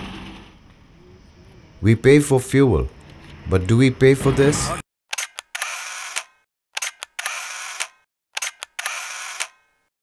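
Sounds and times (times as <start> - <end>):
camera shutter clicks: 5.1 - 9.6.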